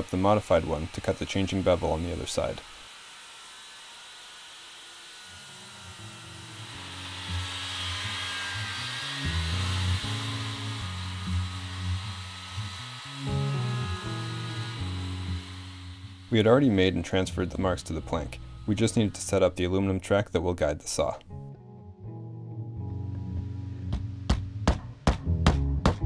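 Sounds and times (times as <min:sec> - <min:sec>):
circular saw cutting wood: 0:00.0 - 0:21.3
background music with bass: 0:06.0 - 0:20.6, 0:21.2 - 0:26.0.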